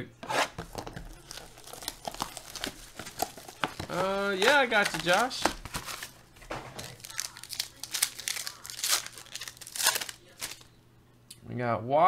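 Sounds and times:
foil wrapper crinkling and tearing: 0.7s - 10.7s.

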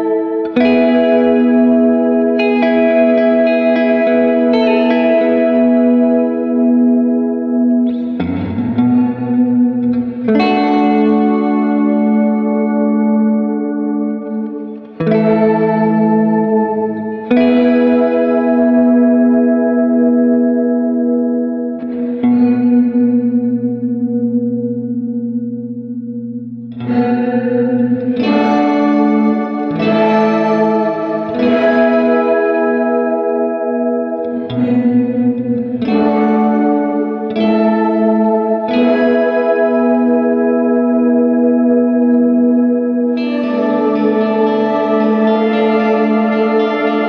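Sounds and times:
electric guitar chords with reverb: 0.0s - 47.0s.

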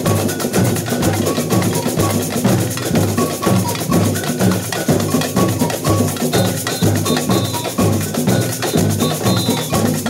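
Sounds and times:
samba percussion band: 0.0s - 10.0s.

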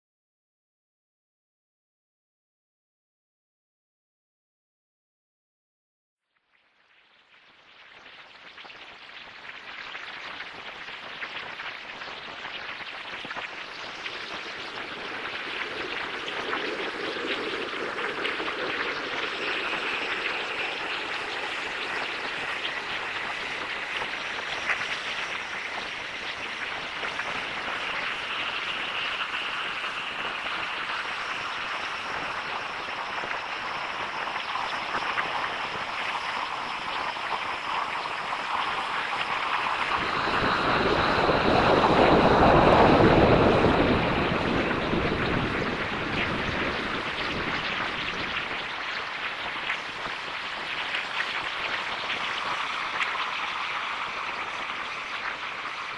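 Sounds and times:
dense noise texture: 8.3s - 55.9s.

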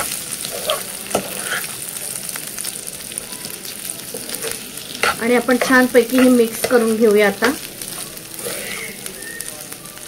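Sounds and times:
spatula scraping a pan: 0.0s - 1.8s, 4.1s - 9.0s
food sizzling in a frying pan: 0.0s - 10.0s.

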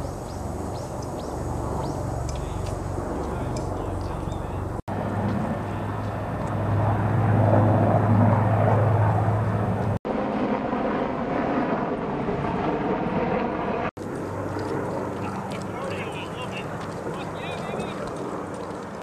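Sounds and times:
low engine drone: 0.0s - 10.7s
outdoor noise: 0.0s - 19.0s
faint voices: 2.2s - 6.4s, 15.0s - 18.4s.

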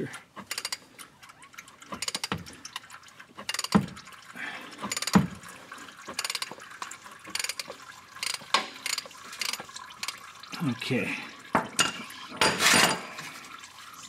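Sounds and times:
ratchet clicking: 0.4s - 0.8s, 1.9s - 2.4s, 3.5s - 3.8s, 4.9s - 5.3s, 6.1s - 6.6s, 7.3s - 10.2s.

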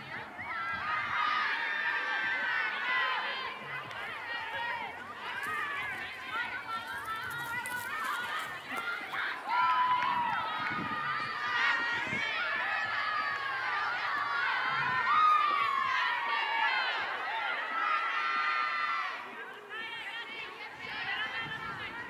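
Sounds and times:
women calling and shouting: 0.0s - 22.0s.

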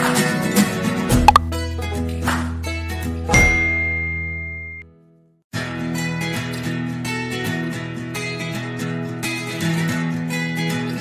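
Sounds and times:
bell-like ding: 3.4s - 4.8s.

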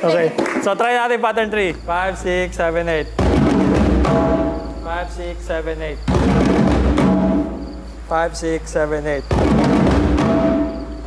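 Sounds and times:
djembes played by hand: 3.1s - 4.8s, 6.0s - 8.0s, 9.3s - 11.0s.

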